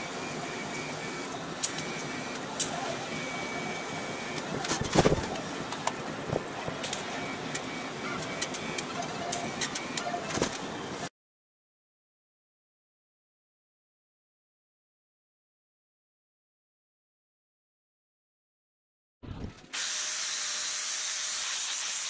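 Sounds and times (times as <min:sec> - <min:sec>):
sharp clicks: 0:01.6 - 0:02.8
welding arc hissing: 0:19.8 - 0:22.0.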